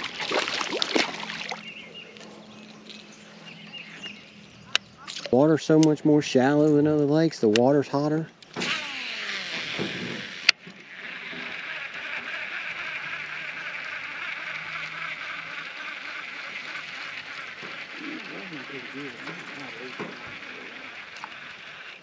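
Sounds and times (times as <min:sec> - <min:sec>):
fishing reel whirring: 0:08.5 - 0:22.0
fishing reel click: 0:20.0 - 0:22.0.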